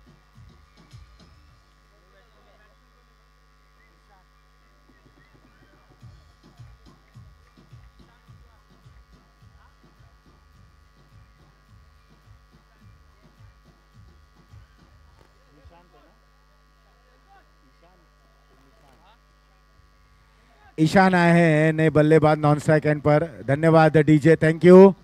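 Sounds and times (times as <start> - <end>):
electrical hum and buzz: 0.0 - 25.0
faint distant voices: 0.7 - 21.1
man speaking loudly: 20.7 - 25.0.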